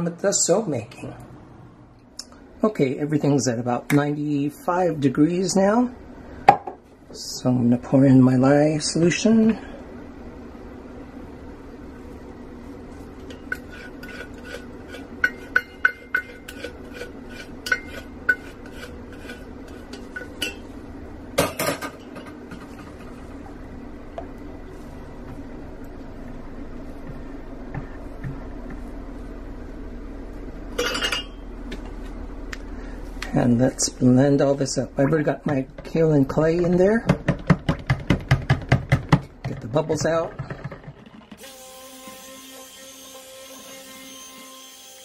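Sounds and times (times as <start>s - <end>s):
stick blender knocking: 36.7s - 41.5s.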